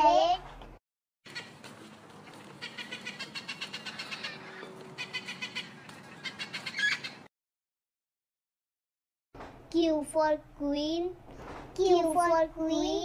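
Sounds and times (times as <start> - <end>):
parrot chirping: 2.2 - 7.3.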